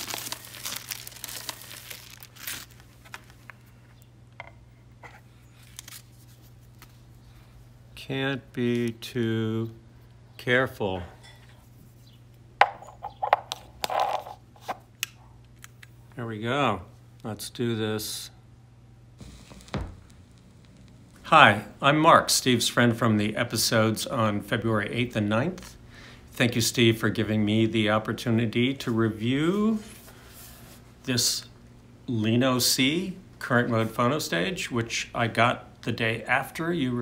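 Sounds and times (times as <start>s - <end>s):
record sleeve rustling: 0.0s - 4.0s, 5.0s - 7.1s
steady low hum: 0.0s - 37.0s
vinyl surface hiss: 19.1s - 25.8s, 26.4s - 37.0s
stylus thump: 19.2s - 20.2s.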